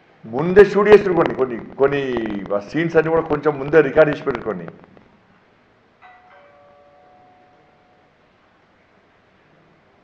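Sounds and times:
faint two-note chime: 6.0s - 8.2s.

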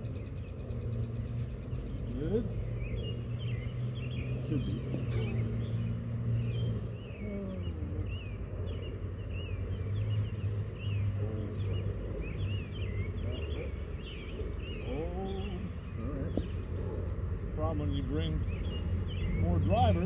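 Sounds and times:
birds chirping: 0.0s - 20.0s
steady low hum: 0.0s - 20.0s.

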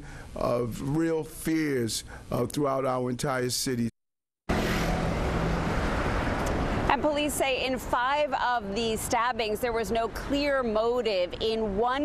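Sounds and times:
traffic noise: 4.5s - 12.0s.

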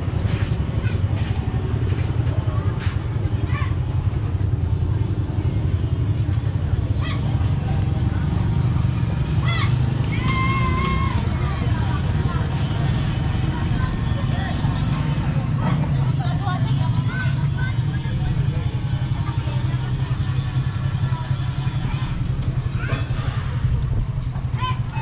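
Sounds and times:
distant voices: 0.0s - 25.0s
low rumble of traffic: 0.0s - 25.0s.

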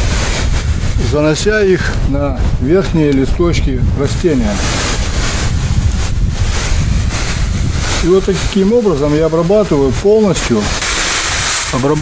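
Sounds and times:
garden sprayer hissing: 0.0s - 1.0s, 4.0s - 12.0s
wind buffeting microphone: 0.0s - 12.0s.

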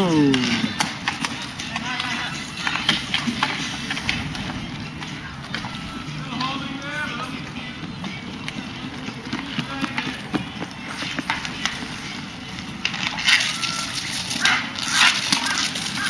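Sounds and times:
skate wheels scraping: 0.0s - 16.0s
hockey sticks clacking: 0.2s - 4.2s, 12.8s - 16.0s.

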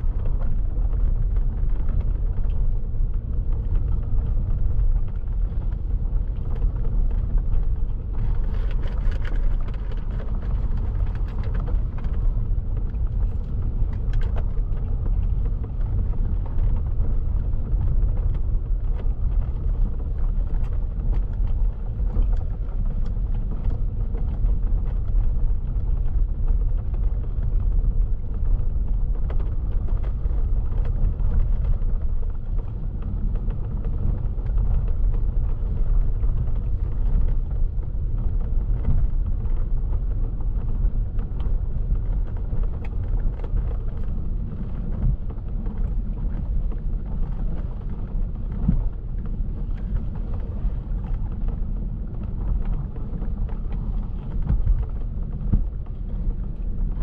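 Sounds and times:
car road rumble: 0.0s - 57.0s.

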